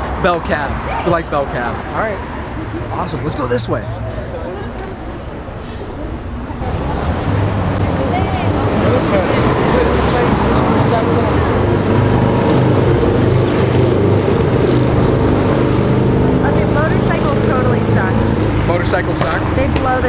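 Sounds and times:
people's voices: 0.0 - 14.5, 16.0 - 20.0
large vehicle engine drone: 0.0 - 20.0
traffic: 0.0 - 20.0.

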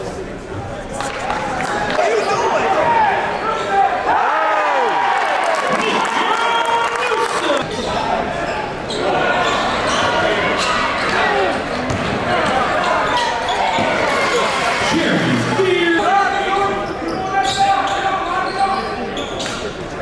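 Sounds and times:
shouts and chatter: 1.2 - 20.0.

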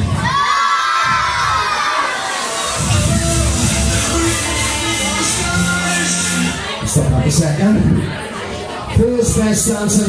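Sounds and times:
children shouting and cheering: 0.0 - 7.0
dance music bass thumping: 2.5 - 7.9.

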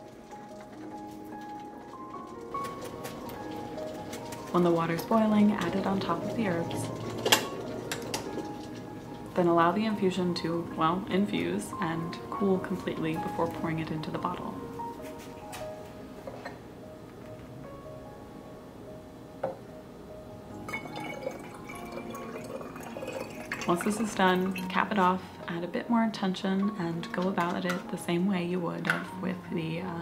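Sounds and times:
liquid trickling into bottle: 20.6 - 24.8.

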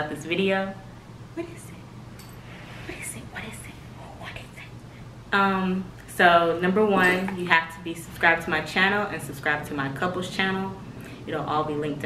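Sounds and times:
low room hum: 0.0 - 12.0
faint whispering: 2.7 - 4.8.

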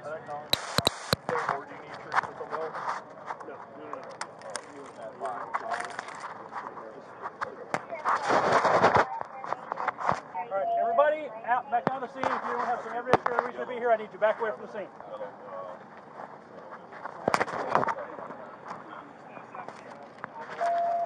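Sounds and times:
indistinct voices: 0.0 - 21.0.

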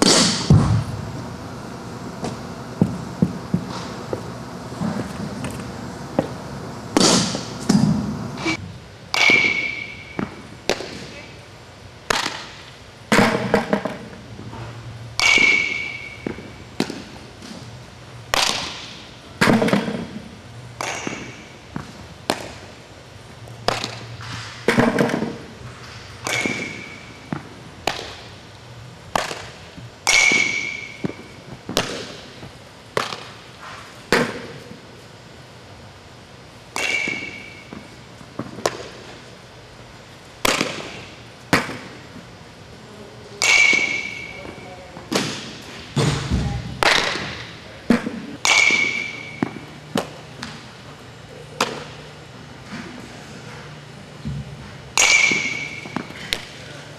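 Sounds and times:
bat hitting balls with ping: 9.1 - 11.1, 12.1 - 14.0, 15.2 - 17.1, 18.3 - 20.1, 20.8 - 22.7, 26.2 - 28.3, 29.1 - 32.2, 36.7 - 39.0, 40.4 - 42.0, 43.4 - 50.1, 54.9 - 56.5
balls smacking into gloves: 20.8 - 22.7, 23.6 - 25.4, 26.2 - 28.3, 29.1 - 33.4, 40.4 - 42.0, 43.4 - 50.6, 51.6 - 52.0, 55.0 - 56.6.

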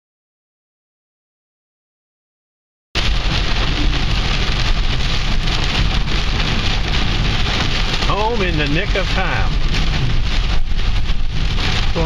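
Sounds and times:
heavy rain on car roof: 3.0 - 12.0.

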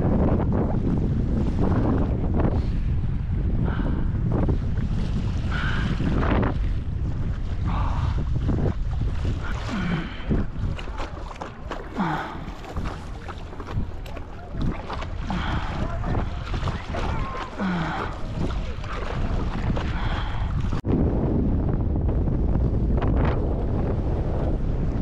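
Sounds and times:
wind buffeting microphone: 0.0 - 25.0
paddle strokes splashing water: 4.5 - 20.8.

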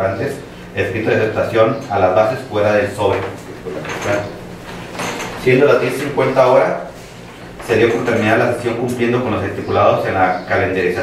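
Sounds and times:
man reading aloud: 0.0 - 4.4, 5.4 - 11.0.

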